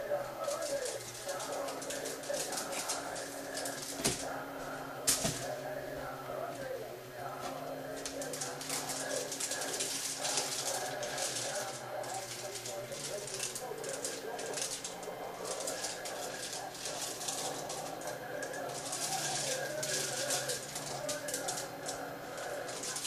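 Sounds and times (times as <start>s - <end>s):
chanted voices: 0.0s - 23.0s
irregular crackle: 0.4s - 4.4s, 7.8s - 23.0s.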